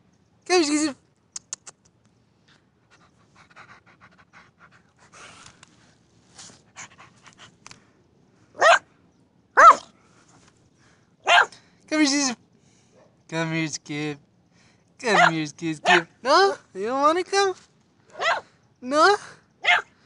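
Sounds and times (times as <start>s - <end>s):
puppy panting: 2.9s - 5.4s, 6.6s - 7.6s, 15.1s - 16.1s
puppy barking high-pitched: 8.6s - 8.9s, 9.6s - 9.9s, 11.2s - 11.6s, 15.1s - 16.6s, 18.1s - 18.5s, 19.6s - 20.0s.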